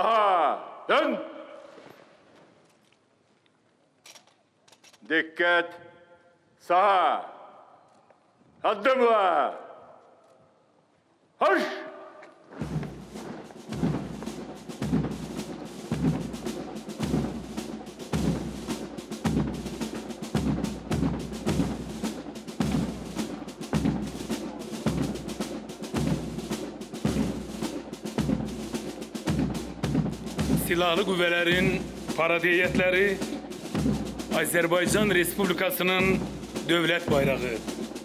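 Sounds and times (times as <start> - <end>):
military band playing a march: 11.6 - 38.0
bass drum beat: 12.6 - 38.0.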